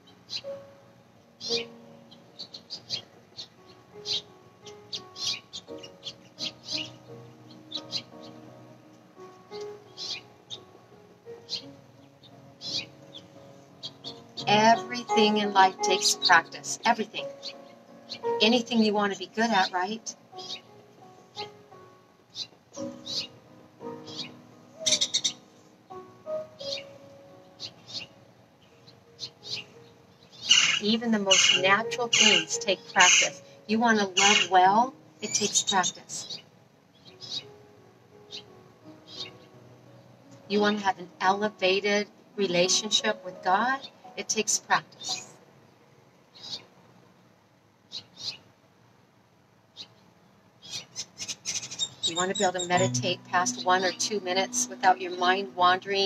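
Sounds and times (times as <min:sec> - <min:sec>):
soft background music: 0:00.0 - 0:46.6, 0:50.7 - 0:56.0
birds chirping: 0:01.4 - 0:08.5, 0:09.5 - 0:10.7, 0:11.4 - 0:20.7, 0:22.3 - 0:25.6, 0:26.6 - 0:37.6, 0:38.3 - 0:39.6, 0:49.8 - 0:56.0.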